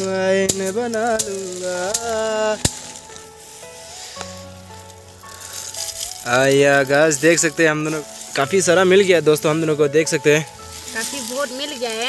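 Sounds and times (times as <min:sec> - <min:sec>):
dry stalks crackling and rustling: 0:00.0 - 0:12.0
faint music of held notes: 0:00.0 - 0:12.0.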